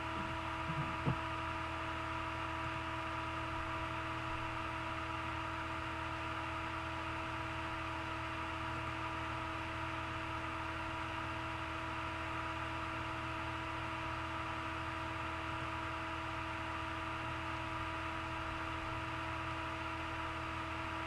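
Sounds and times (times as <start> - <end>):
electrical hum and hiss: 0.0 - 1.4.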